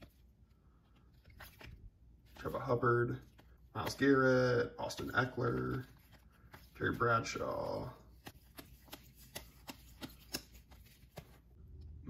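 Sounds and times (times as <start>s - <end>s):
trading cards clicking: 4.9s - 11.4s.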